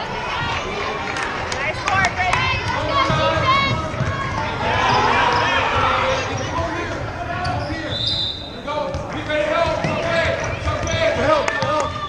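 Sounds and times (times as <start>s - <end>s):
voices calling out: 0.0s - 12.0s.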